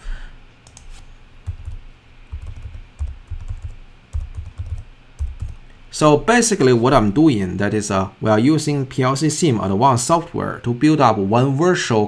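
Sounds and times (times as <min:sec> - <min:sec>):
keyboard keystrokes clicking: 0:00.6 - 0:05.6.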